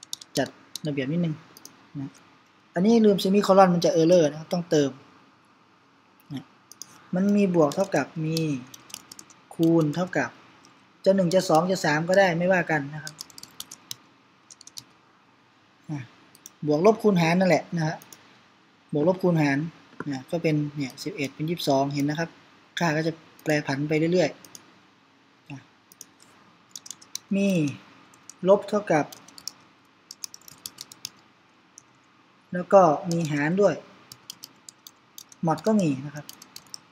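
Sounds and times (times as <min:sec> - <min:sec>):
computer keyboard typing: 0:00.0 - 0:00.9, 0:01.6 - 0:02.2, 0:06.7 - 0:10.2, 0:11.3 - 0:14.9, 0:16.4 - 0:16.6, 0:24.4 - 0:24.6, 0:25.9 - 0:31.2, 0:33.1 - 0:33.4, 0:34.1 - 0:36.9.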